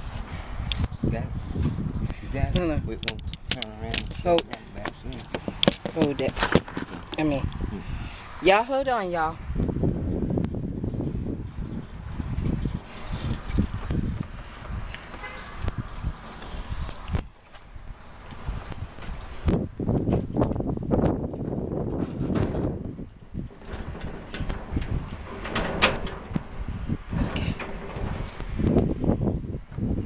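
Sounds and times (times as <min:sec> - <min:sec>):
padlock rattling against metal latch: 0:02.6 - 0:07.3, 0:23.5 - 0:28.7
steady low rumble: 0:19.6 - 0:30.0.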